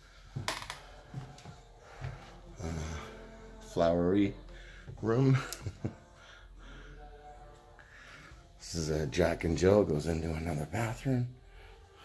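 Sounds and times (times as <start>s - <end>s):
footsteps: 0.2s - 2.5s.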